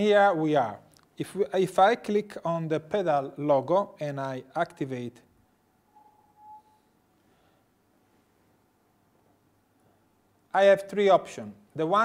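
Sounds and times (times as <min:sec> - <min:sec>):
short steady beep: 0:05.9 - 0:06.9.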